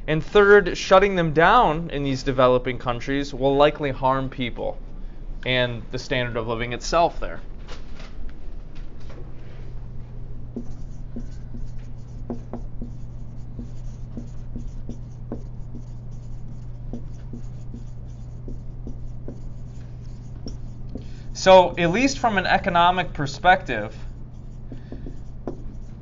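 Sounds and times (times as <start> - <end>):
low hum: 4.7 - 26.0
pen scratching and tapping: 10.5 - 21.1, 24.3 - 26.0.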